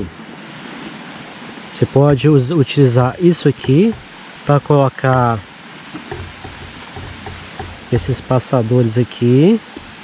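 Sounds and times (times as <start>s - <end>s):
stream rushing: 0.2s - 10.0s.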